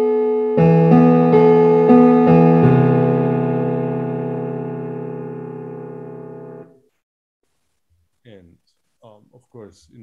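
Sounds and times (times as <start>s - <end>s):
sustained synthesized chord: 0.3s - 6.8s.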